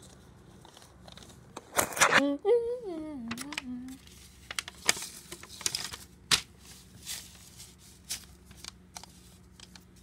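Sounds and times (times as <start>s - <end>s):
paper rustling: 0.0s - 2.2s, 3.3s - 10.0s.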